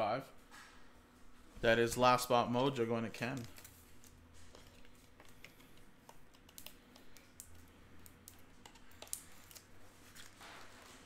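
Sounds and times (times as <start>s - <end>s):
computer keyboard typing: 4.6s - 9.6s.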